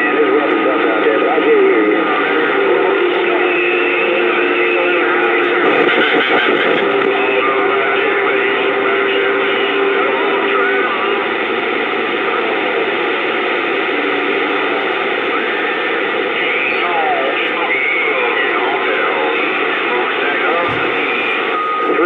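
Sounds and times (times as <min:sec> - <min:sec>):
faint garbled radio voices: 0:00.0 - 0:22.0
radio static hiss: 0:00.0 - 0:22.0
wavering radio whistles: 0:01.4 - 0:22.0.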